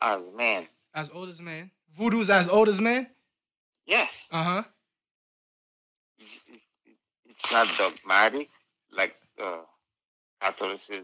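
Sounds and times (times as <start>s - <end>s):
man's voice over phone speaker: 0.0s - 3.1s, 10.4s - 11.0s.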